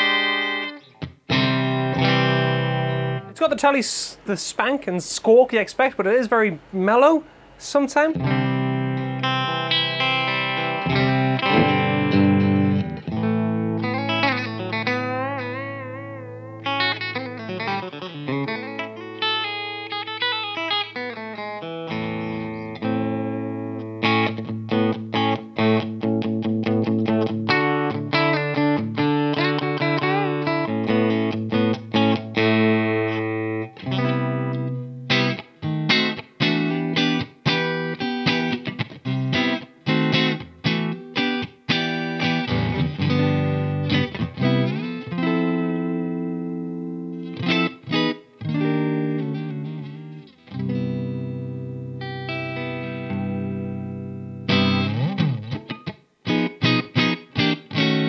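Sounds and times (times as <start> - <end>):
electric guitar through an amp: 0.0 - 3.4, 8.2 - 58.0.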